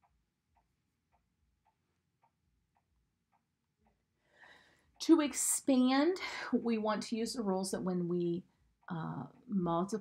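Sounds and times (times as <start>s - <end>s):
faint regular ticking: 0.0s - 10.0s.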